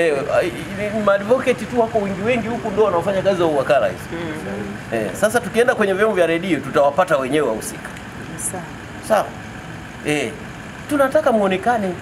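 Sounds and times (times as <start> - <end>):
man speaking: 0.0 - 7.9, 10.0 - 12.0
low background hum: 0.0 - 12.0.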